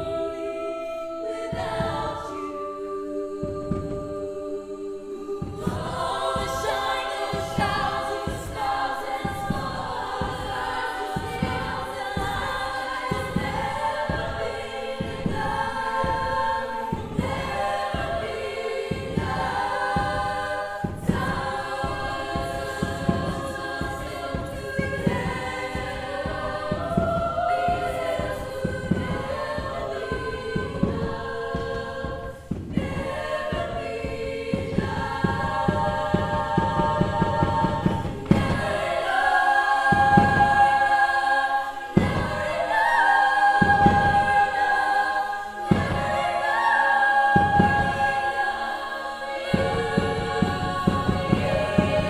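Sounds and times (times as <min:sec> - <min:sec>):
women's choir singing: 0:00.0 - 0:52.0
bass drum beat: 0:05.4 - 0:41.0.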